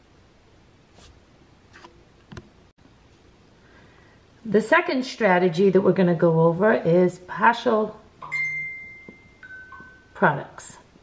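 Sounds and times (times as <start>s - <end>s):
two-note chime: 8.2s - 10.3s.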